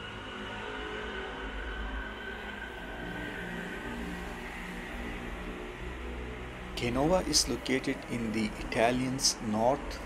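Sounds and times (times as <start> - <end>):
faint steady whine: 0.0 - 10.0
tunnel traffic rumble and hiss: 0.0 - 10.0.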